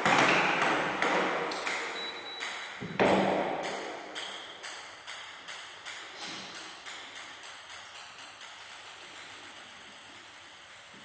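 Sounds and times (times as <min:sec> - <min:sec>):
table tennis ball bouncing: 0:00.0 - 0:08.6.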